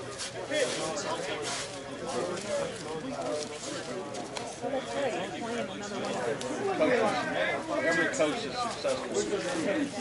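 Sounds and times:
men talking indistinctly: 0:00.0 - 0:10.0.

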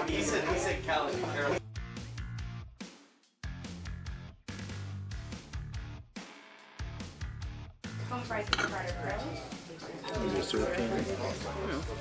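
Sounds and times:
fork clinking on plate: 0:08.5 - 0:08.9.

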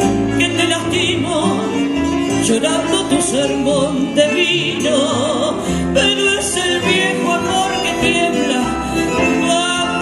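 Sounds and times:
tango ensemble playing: 0:00.0 - 0:10.0
woman singing: 0:00.2 - 0:10.0.

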